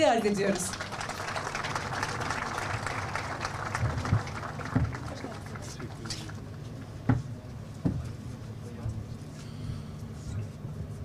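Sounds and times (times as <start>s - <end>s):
steady low hum: 0.0s - 11.0s
faint murmur of voices: 3.9s - 11.0s.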